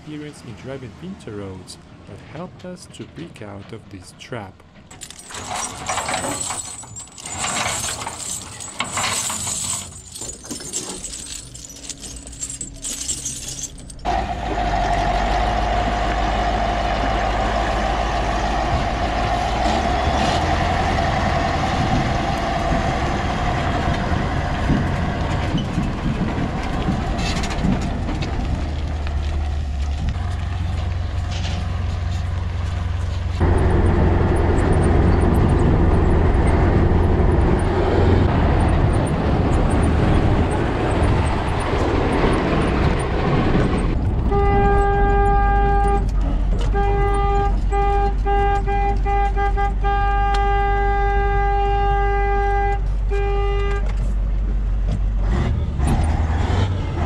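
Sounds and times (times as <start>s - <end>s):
heavy truck engines: 0.0s - 57.0s.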